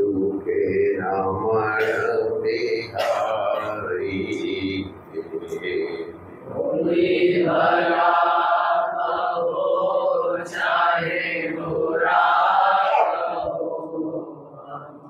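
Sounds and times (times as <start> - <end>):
person chanting a mantra: 0.0 - 15.0.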